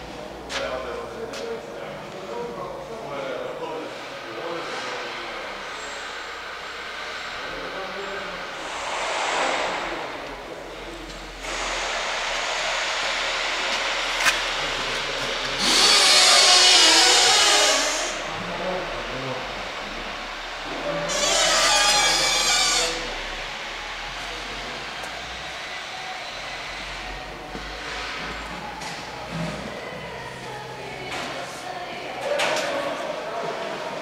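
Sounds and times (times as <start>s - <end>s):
power tool whining: 13.5s - 25.3s.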